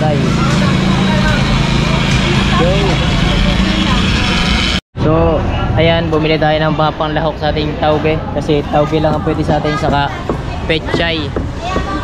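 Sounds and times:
background voices and chatter: 0:00.0 - 0:12.0
loud low machine hum: 0:00.0 - 0:12.0.

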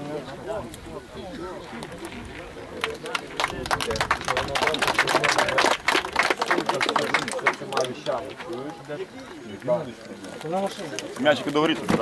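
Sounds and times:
voices: 0:00.0 - 0:12.0
hand clapping: 0:02.8 - 0:08.8.

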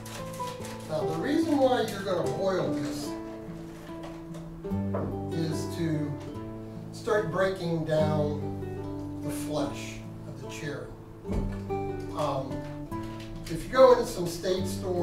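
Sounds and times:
acoustic guitar music: 0:00.0 - 0:15.0.

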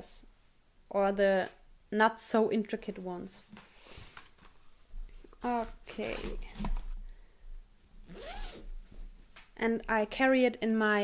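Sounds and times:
zipper being pulled: 0:05.4 - 0:06.7, 0:08.0 - 0:08.7.

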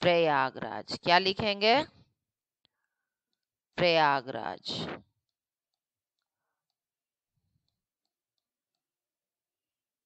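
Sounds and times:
faint evenly spaced ticks: 0:05.1 - 0:09.1.

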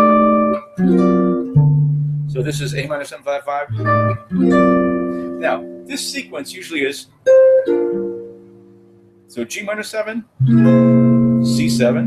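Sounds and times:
jazz guitar chord ringing: 0:00.0 - 0:03.0, 0:03.7 - 0:09.5, 0:10.4 - 0:12.0.

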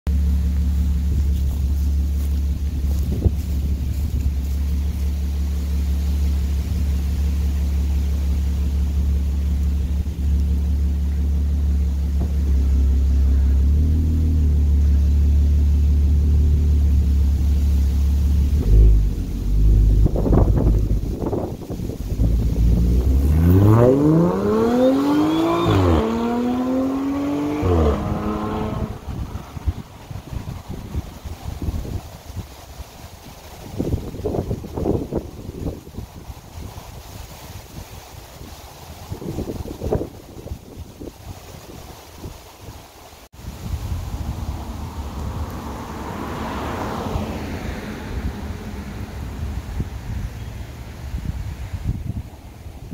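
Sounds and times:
car engine revving: 0:00.1 - 0:30.5, 0:44.6 - 0:49.9
car engine idling: 0:00.1 - 0:41.6
car accelerating with upshifts: 0:00.2 - 0:30.5, 0:44.3 - 0:50.5.

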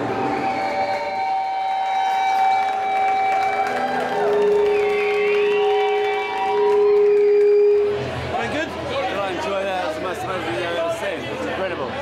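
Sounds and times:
electric guitar: 0:00.0 - 0:08.3.

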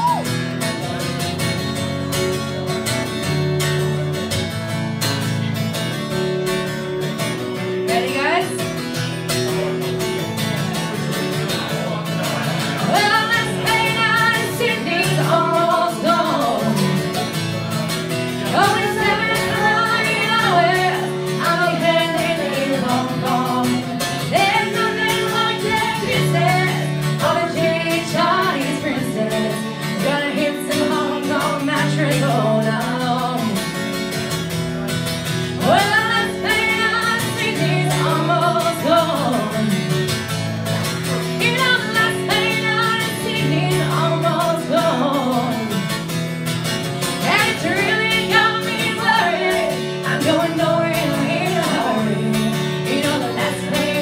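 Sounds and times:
guitar bass line: 0:00.0 - 0:54.0
woman singing: 0:07.6 - 0:08.8, 0:12.8 - 0:17.3, 0:18.3 - 0:33.8, 0:35.6 - 0:40.2, 0:41.3 - 0:46.1, 0:47.0 - 0:54.0.

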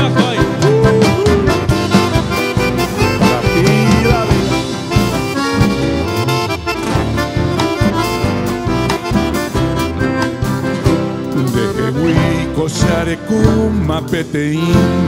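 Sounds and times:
saxophone: 0:00.0 - 0:12.7
accordion: 0:00.0 - 0:15.0
strummed acoustic guitar: 0:00.0 - 0:15.0.

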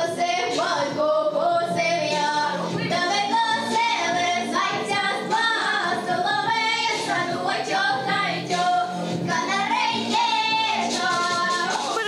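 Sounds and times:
girl singing through a microphone: 0:00.0 - 0:12.0.

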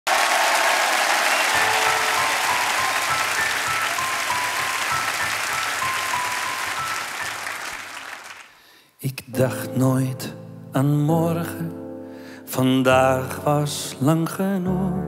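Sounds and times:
audience applauding: 0:00.1 - 0:08.6.

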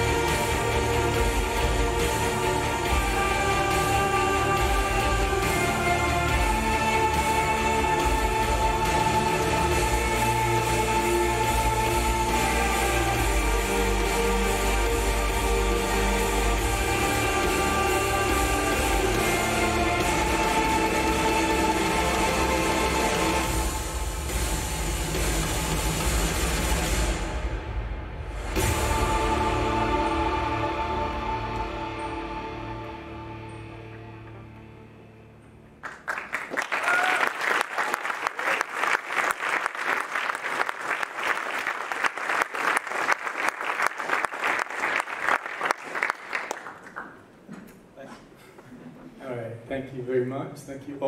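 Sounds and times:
audience applauding: 0:35.8 - 0:47.5.

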